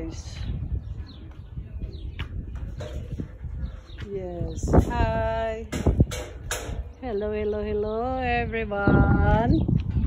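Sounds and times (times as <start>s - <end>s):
wind rumbling on microphone: 0.0s - 10.0s
soft footsteps on dirt: 0.2s - 5.1s.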